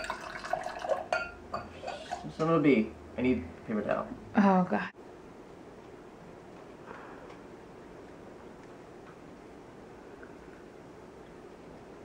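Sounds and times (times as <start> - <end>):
wine pouring into glass: 0.0 - 2.2.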